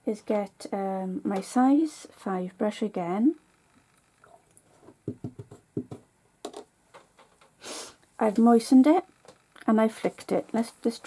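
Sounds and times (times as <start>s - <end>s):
brush light taps and knocks: 4.9s - 7.5s.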